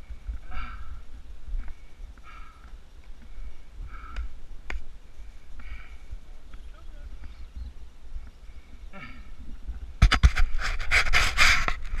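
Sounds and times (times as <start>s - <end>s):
rustling and scraping on microphone: 9.5s - 12.0s.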